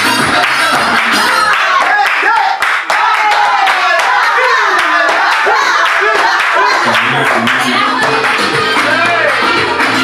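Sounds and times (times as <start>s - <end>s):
people singing and calling: 0.0s - 2.0s, 3.5s - 10.0s
people clapping: 0.0s - 10.0s.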